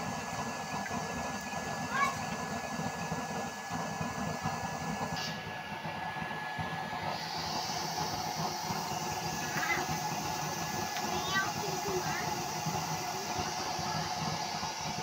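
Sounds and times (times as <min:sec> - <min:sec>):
roaring burner flame and fan: 0:00.0 - 0:15.0
thin steady whine: 0:00.0 - 0:15.0.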